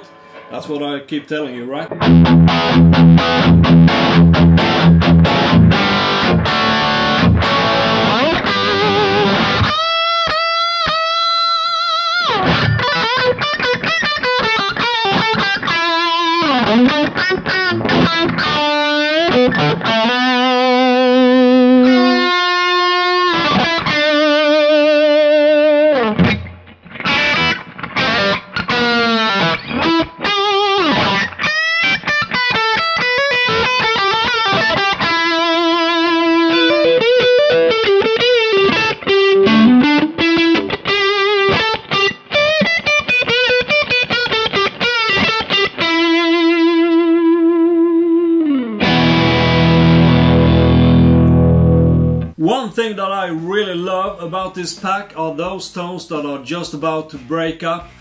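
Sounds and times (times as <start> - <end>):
overdriven electric guitar lead: 0.0 - 0.6, 1.9 - 52.4.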